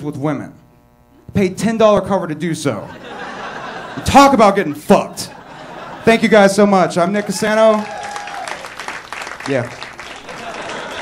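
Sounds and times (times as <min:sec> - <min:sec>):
audience applauding: 0:07.1 - 0:11.0.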